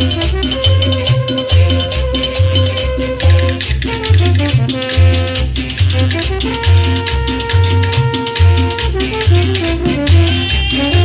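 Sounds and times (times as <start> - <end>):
euphonium and brass: 0.0 - 11.0
latin dance band music: 0.0 - 11.0
maracas rattling: 0.0 - 11.0
pulsing bass line: 0.0 - 11.0.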